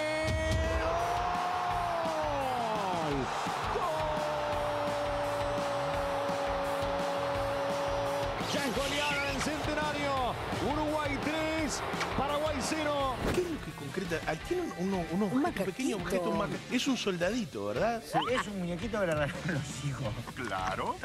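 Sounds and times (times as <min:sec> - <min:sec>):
excited shouted commentary: 0:00.0 - 0:17.1.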